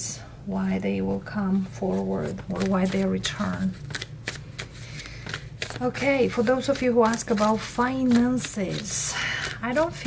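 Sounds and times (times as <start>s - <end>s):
cards being shuffled: 1.9s - 10.0s.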